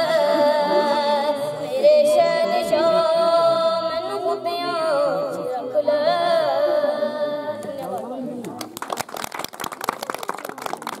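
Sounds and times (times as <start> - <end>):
audience clapping: 8.5 - 11.0.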